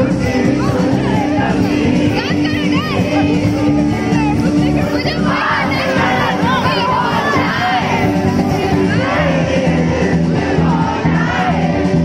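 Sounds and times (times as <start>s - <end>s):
crowd shouting and singing along: 0.0s - 12.0s
live band music over a pa: 0.0s - 12.0s.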